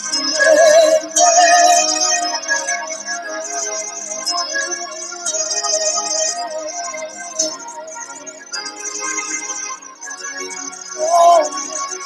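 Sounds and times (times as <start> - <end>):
woman singing: 11.0 - 11.8.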